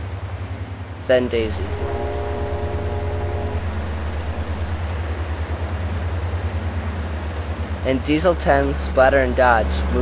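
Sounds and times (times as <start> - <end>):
diesel engine rumbling: 1.0 - 5.8
steady horn note: 1.1 - 5.2.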